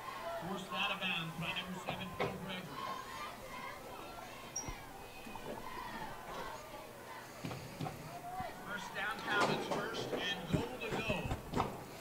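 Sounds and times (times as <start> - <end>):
commentary: 0.0 - 11.6
indistinct background voices: 0.0 - 12.0.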